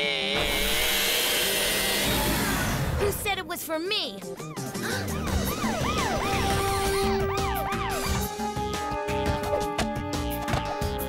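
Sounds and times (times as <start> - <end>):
background music: 1.2 - 11.0.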